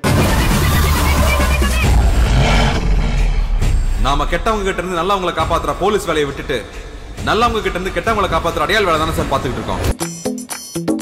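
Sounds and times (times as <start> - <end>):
hissing swell: 1.8 - 7.1
deep heavy rumble: 1.8 - 7.8.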